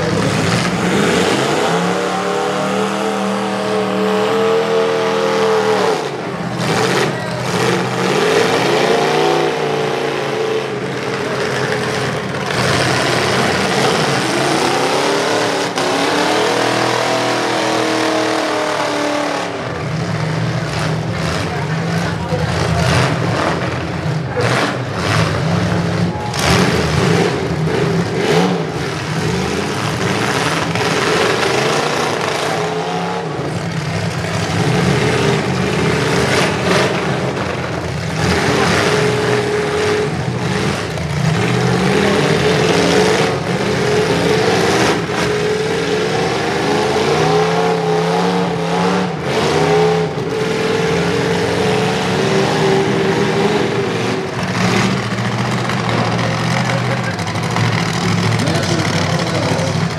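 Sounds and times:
truck engines revving: 0.0 - 59.9.

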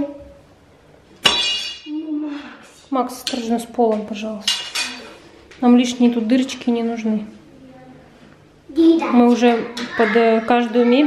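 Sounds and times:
metal bar clanking: 1.2 - 1.9.

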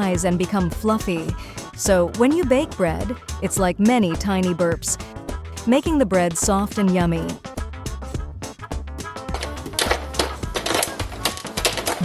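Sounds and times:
background music: 0.0 - 12.0
popcorn kernels popping: 9.3 - 12.0.

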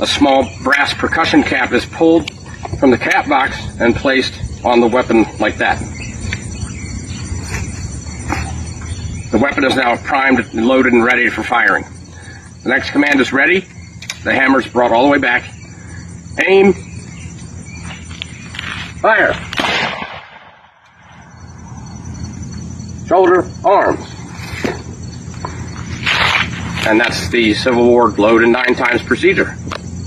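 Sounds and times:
crickets chirring: 0.0 - 30.0
rifle shot echo: 19.5 - 20.8.

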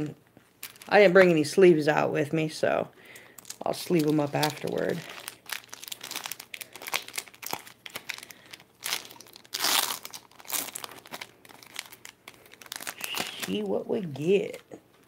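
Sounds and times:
plastic foil wrapper crinkling: 0.4 - 1.6, 3.1 - 15.0.

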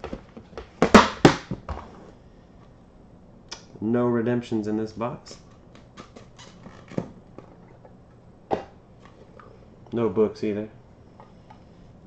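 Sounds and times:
plastic case handling noise: 5.4 - 7.9.

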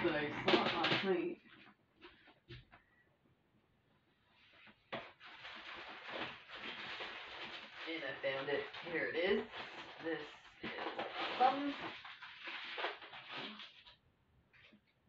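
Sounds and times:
woman talking quietly: 0.0 - 1.4, 7.8 - 11.9
continuous rustling: 4.2 - 14.9.

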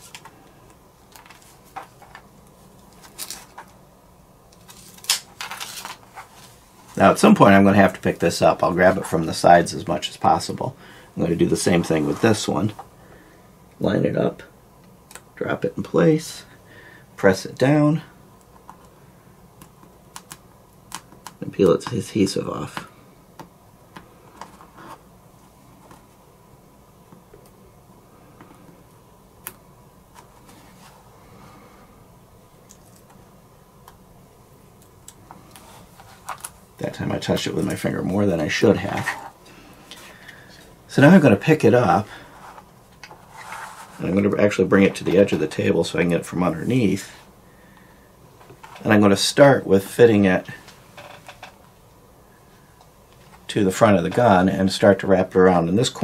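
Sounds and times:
low room hiss: 0.0 - 56.0.

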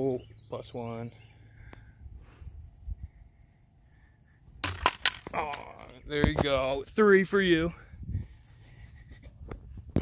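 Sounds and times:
frisbee knocking pole and bottle: 4.6 - 5.7.

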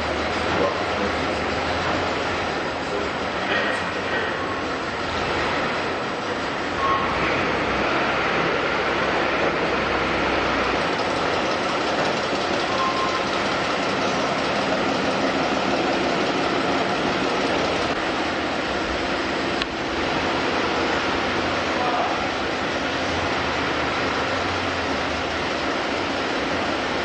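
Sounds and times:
factory machinery din: 0.0 - 27.0.

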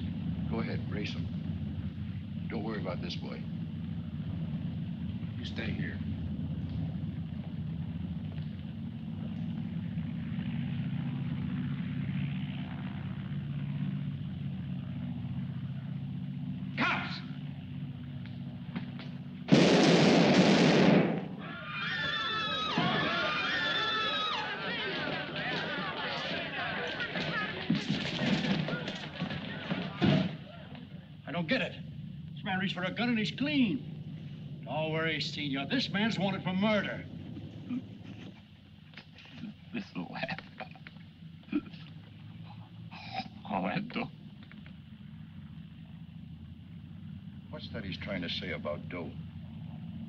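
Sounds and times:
low background hum: 0.0 - 50.0
gunshot: 19.5 - 21.4
very loud burst: 19.5 - 24.5.

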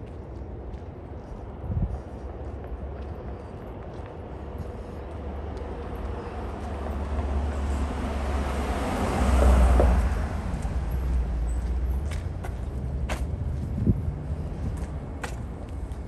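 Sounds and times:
car driving past: 6.5 - 14.4.

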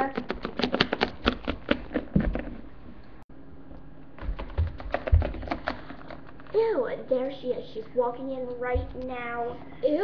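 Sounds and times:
plastic figurines tapping on floor: 4.2 - 5.8.

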